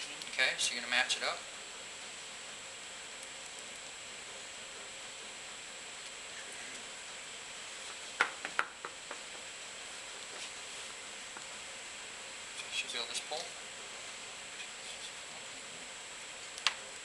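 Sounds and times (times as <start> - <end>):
steady faint hiss: 0.0 - 17.0.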